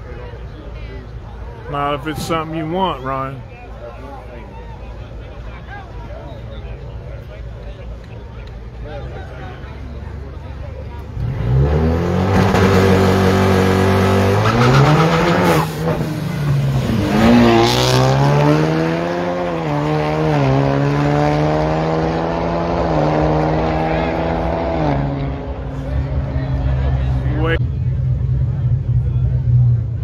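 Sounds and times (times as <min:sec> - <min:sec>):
drag car engines accelerating: 0:08.7 - 0:30.0.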